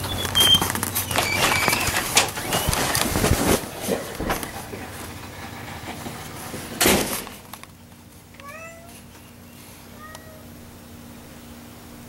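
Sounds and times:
cat meowing: 0:08.4 - 0:09.1, 0:09.9 - 0:10.6.

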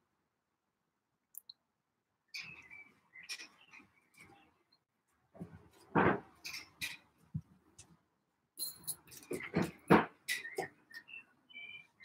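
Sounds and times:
faint high chirps and clicks: 0:01.3 - 0:01.7, 0:02.3 - 0:04.9, 0:10.3 - 0:12.0.

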